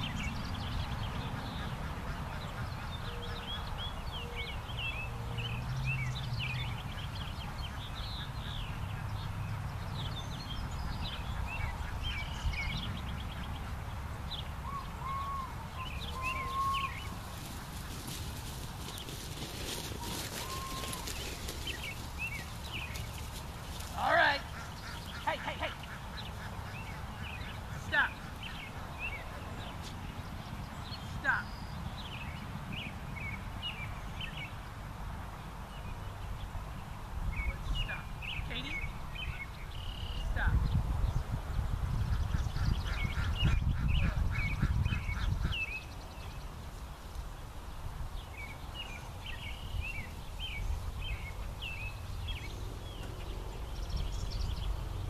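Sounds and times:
small birds chirping: 0.0 - 55.0
ducks quacking: 23.6 - 29.8, 42.1 - 45.9
wind rumble on microphone: 35.5 - 55.0.

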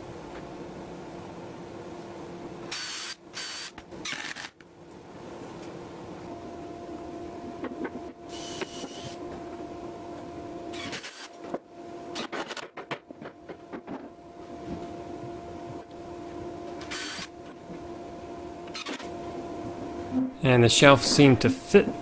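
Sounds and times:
steady low hum: 0.0 - 22.0
cordless drill driving screws: 2.7 - 4.5, 16.9 - 17.3.

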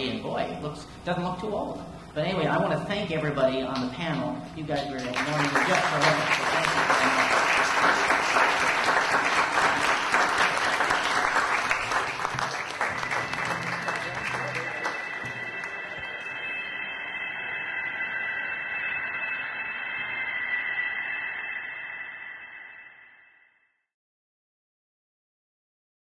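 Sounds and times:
steady high-pitched tone: 0.0 - 23.9
audience applauding: 4.8 - 16.3.

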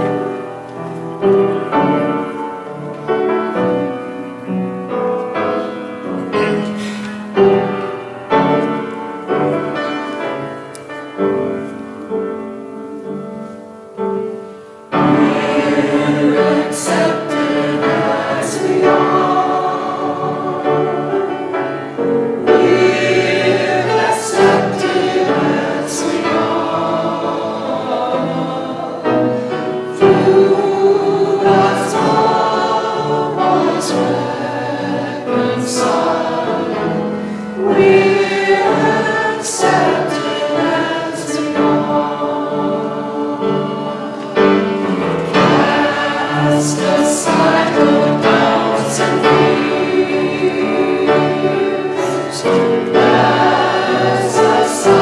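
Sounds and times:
choir and congregation singing hymn: 0.0 - 55.0.

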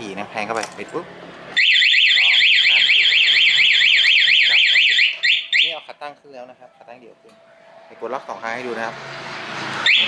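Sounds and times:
alarm chirps: 1.6 - 5.8
alarm siren wailing: 1.6 - 5.9, 9.8 - 10.0.

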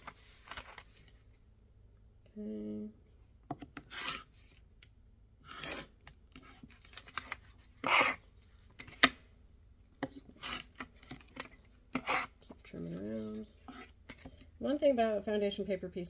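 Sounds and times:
rotary cutter slicing fabric: 7.8 - 8.2.

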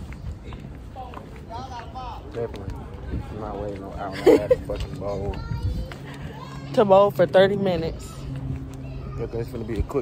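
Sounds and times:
wind noise on microphone: 0.0 - 4.0, 4.6 - 6.6
footsteps on pavement: 0.0 - 10.0.

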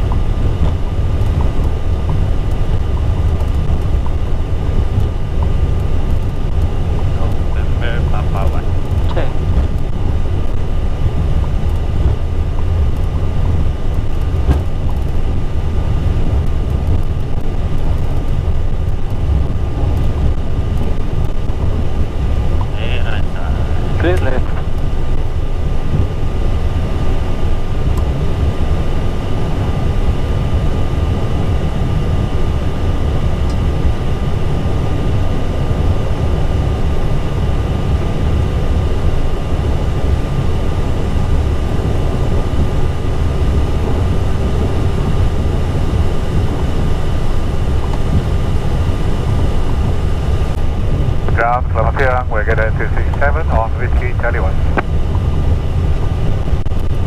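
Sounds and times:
jet engines rumbling: 0.0 - 57.0
thin steady whine: 0.0 - 57.0.

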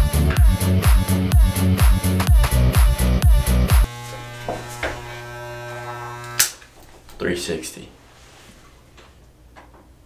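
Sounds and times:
electric hair clippers buzzing: 3.5 - 6.7.

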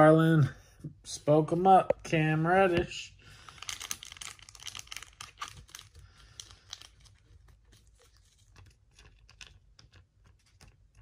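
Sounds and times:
cards clicking and rustling: 3.5 - 11.0.

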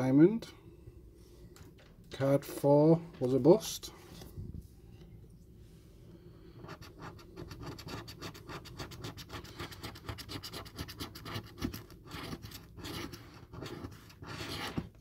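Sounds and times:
coin scraping a scratchcard: 6.7 - 14.8.

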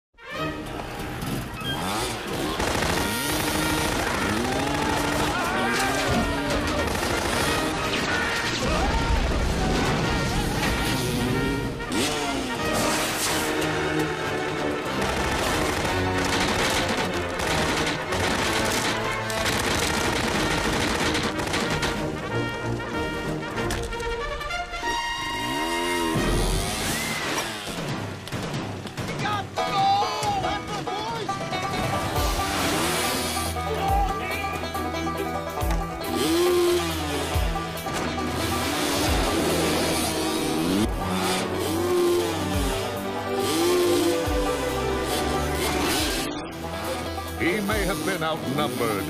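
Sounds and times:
dirt bike engine revving: 0.2 - 22.8, 25.2 - 28.3, 31.5 - 49.0
film score music: 0.2 - 49.0
engine crackling: 0.5 - 49.0.

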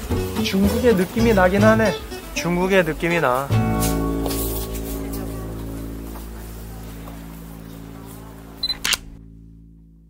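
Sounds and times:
background music: 0.0 - 10.0
camera beep: 8.6 - 9.1
camera shutter click: 8.6 - 9.1.

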